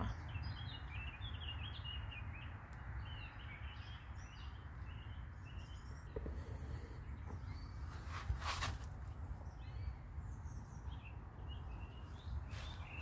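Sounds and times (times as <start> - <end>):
songbirds chirping: 0.0 - 13.0.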